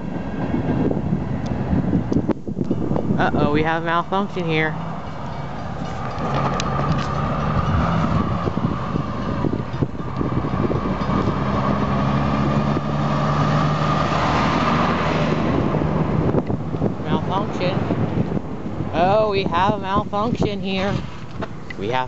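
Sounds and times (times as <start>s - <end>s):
truck engine running: 0.0s - 20.2s
pickup truck driving past: 4.5s - 19.0s.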